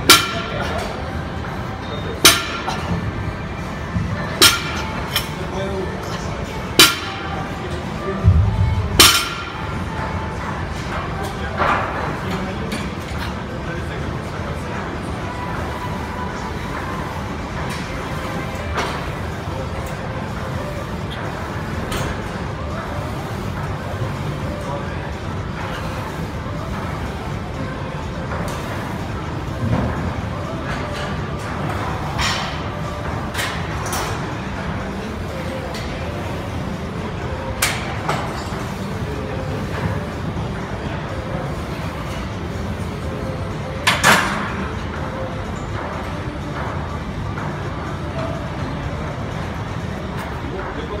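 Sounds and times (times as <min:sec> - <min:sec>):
low rumble of gym background: 0:00.0 - 0:51.0.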